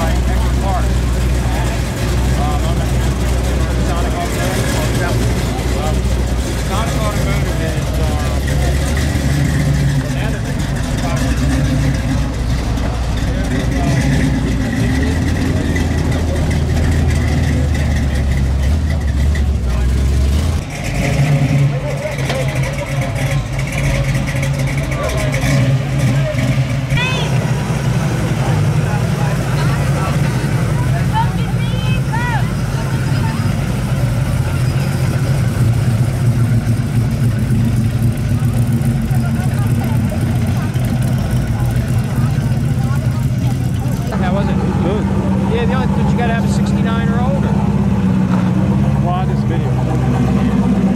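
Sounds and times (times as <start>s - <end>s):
muscle car engines rumbling: 0.0s - 50.9s
people chattering: 0.0s - 50.9s.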